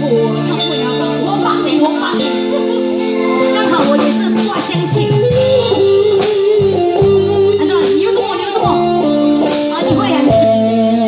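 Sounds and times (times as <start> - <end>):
gliding lead melody: 0.0 - 11.0
live band through pa system: 0.0 - 11.0.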